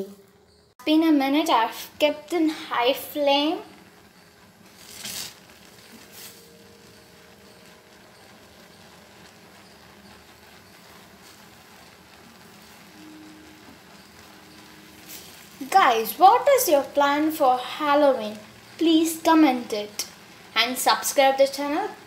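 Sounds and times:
custard sizzling in a pan: 0:00.5 - 0:22.0
wooden spatula scraping a pan: 0:04.7 - 0:13.0.

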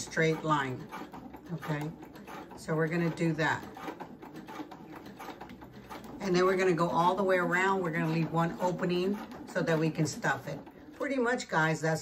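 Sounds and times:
electric sewing machine stitching: 0:00.0 - 0:12.0.

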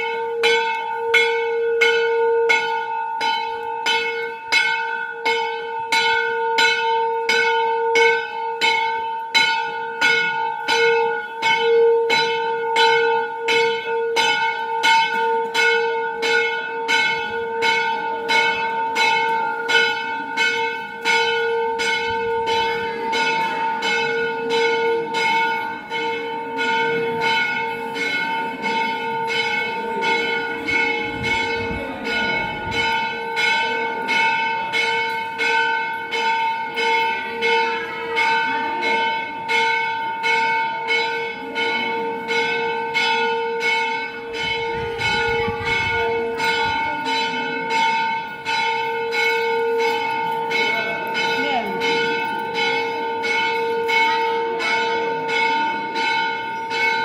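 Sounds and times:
temple bell ringing: 0:00.0 - 0:57.0
crowd chatter: 0:07.8 - 0:57.0.

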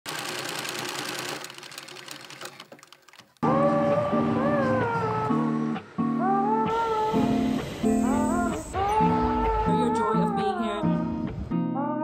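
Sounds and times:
film projector clicking: 0:00.1 - 0:03.4
guitar music: 0:03.4 - 0:12.0.

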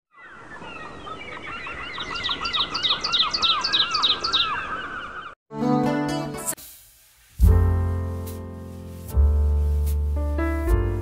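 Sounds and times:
birds chirping: 0:00.1 - 0:05.4
music: 0:05.5 - 0:06.6, 0:07.4 - 0:11.0.

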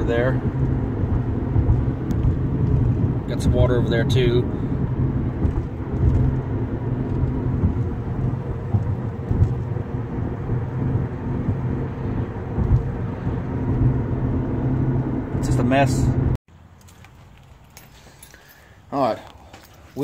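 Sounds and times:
car cabin road rumble: 0:00.0 - 0:16.4.

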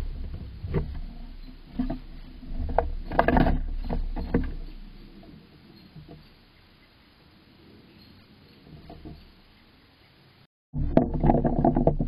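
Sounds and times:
low rumble: 0:00.0 - 0:03.9
squirrel claws scraping on wood: 0:00.2 - 0:06.4.

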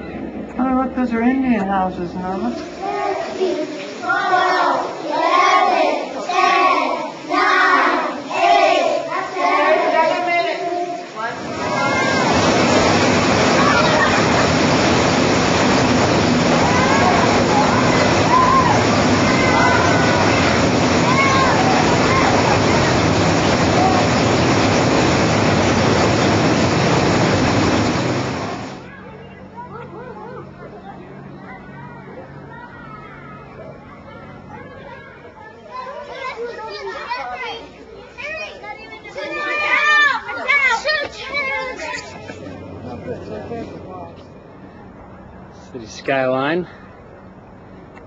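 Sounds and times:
children calling and chattering: 0:00.0 - 0:01.1, 0:01.9 - 0:26.8, 0:27.6 - 0:48.0
rush of falling water: 0:00.3 - 0:29.2, 0:35.7 - 0:44.0.

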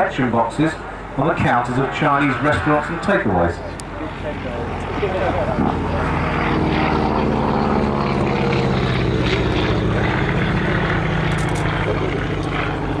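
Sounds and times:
propeller aircraft engine passing: 0:00.0 - 0:13.0.

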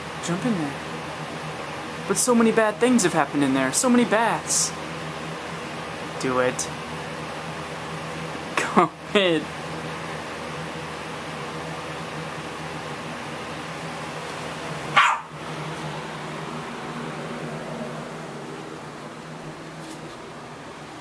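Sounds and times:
steady low hum: 0:00.0 - 0:21.0
small dog barking: 0:14.9 - 0:15.4.

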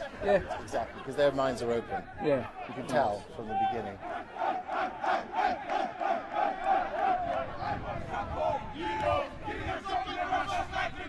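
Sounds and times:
group shouting and chanting: 0:00.0 - 0:11.0.

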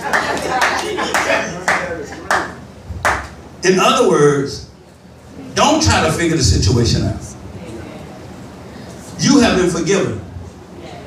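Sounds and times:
hands clapping slowly: 0:00.0 - 0:03.4.

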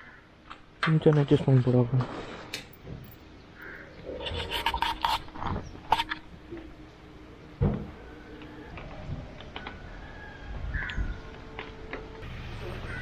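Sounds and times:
phone mount clicks and scrapes: 0:04.2 - 0:06.3.

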